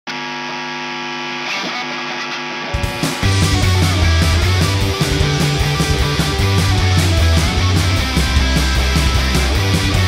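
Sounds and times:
sustained electric guitar chord: 0.2 - 10.0.

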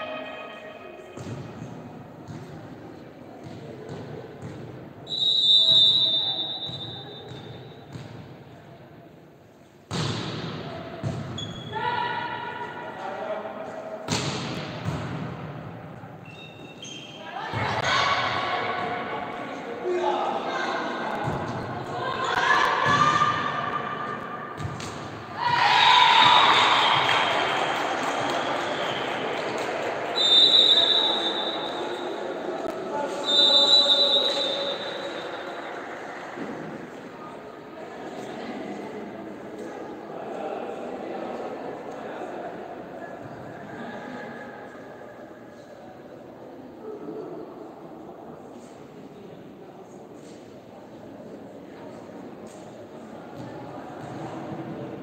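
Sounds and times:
referee's whistle: 5.1 - 7.7, 30.2 - 32.2, 33.2 - 35.4
volleyball hits: 9.9 - 11.4, 14.1 - 15.7
players and spectators shouting: 25.4 - 28.4
crowd cheering: 25.4 - 32.7.

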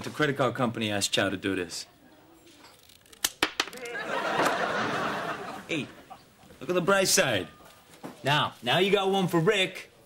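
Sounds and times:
scissors snipping plastic card: 2.6 - 4.0.

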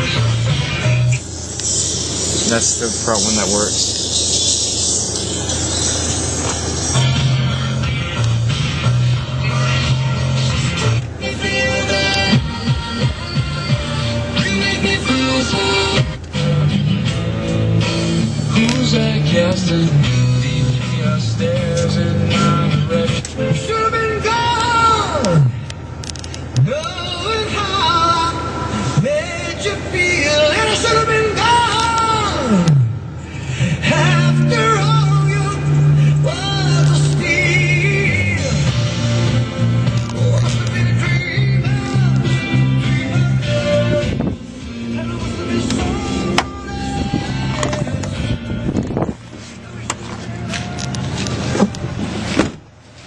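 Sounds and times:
music from car speaker: 0.0 - 53.0.

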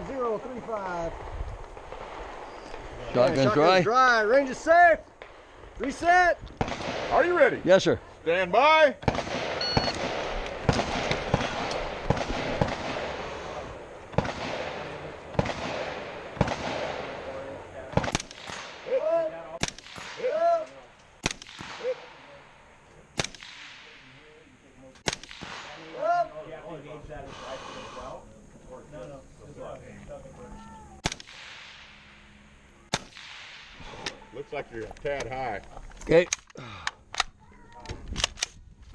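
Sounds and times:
rifle shots: 5.2 - 7.6, 9.0 - 24.4, 25.0 - 26.0, 31.0 - 34.2
short high beep: 9.6 - 10.0.

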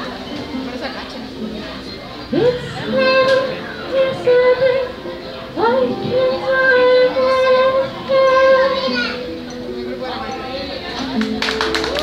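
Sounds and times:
acoustic guitars playing: 0.0 - 12.0
woman singing long note: 2.3 - 8.8.

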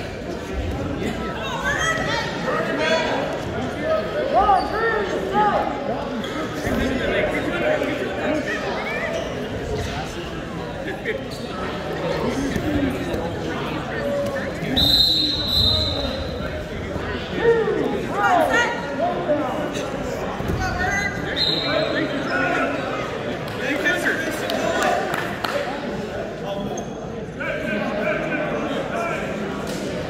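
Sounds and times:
people talking and calling out: 0.0 - 30.0.

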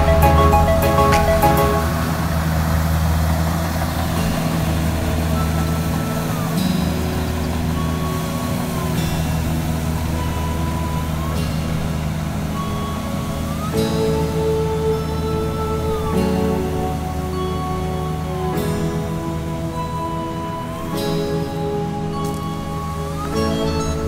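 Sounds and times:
combine harvester diesel engine running: 0.0 - 13.8.

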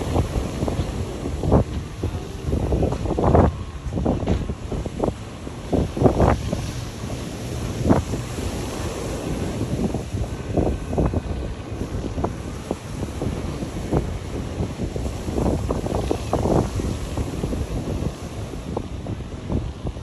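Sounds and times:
surf washing on shore: 0.0 - 20.0
wind buffeting microphone: 0.0 - 20.0.

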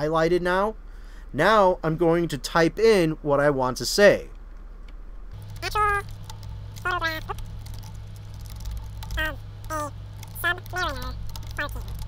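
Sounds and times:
steady low hum: 0.0 - 12.0
keyboard keys clicking: 5.4 - 12.0.

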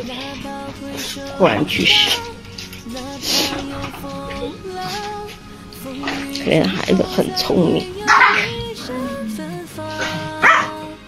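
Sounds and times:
soft background music: 0.0 - 11.0
dog barking: 8.1 - 8.5, 10.4 - 10.8.

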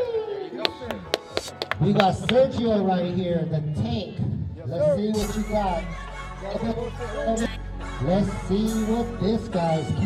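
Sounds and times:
men's voices: 0.0 - 10.0.

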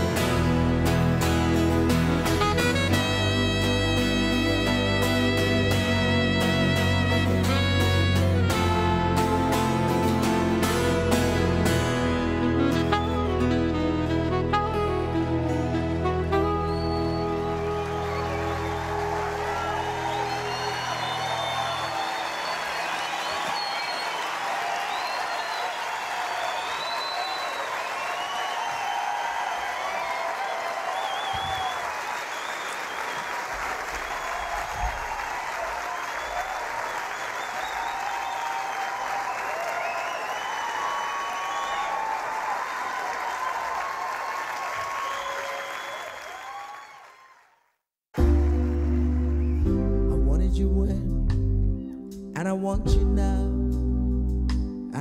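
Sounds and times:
low music notes: 0.0 - 20.2, 48.2 - 55.0
audience applauding and cheering: 0.0 - 50.2
whistles from audience: 16.3 - 47.4, 48.9 - 49.9.

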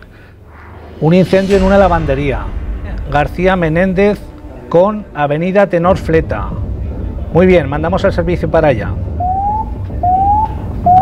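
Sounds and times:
low steady hum: 0.0 - 11.0
rising electronic alert beeps: 9.2 - 11.0.

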